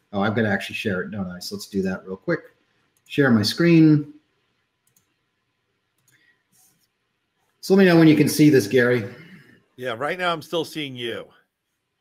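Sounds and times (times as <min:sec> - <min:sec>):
computer mouse clicks: 0:04.8 - 0:05.3, 0:05.9 - 0:07.6.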